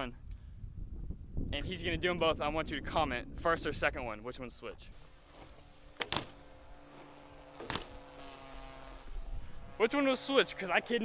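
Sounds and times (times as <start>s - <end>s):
faint steady hum: 4.6s - 11.0s
bike landing on asphalt: 5.2s - 8.7s.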